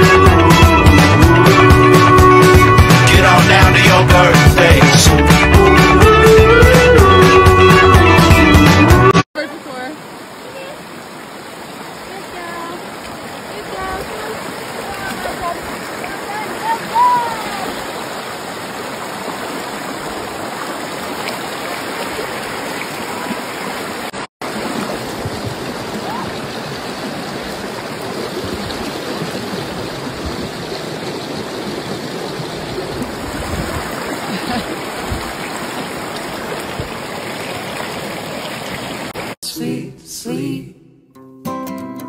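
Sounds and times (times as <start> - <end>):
river rushing over boulders: 9.4 - 39.4
stream flowing over rocks: 9.4 - 39.4.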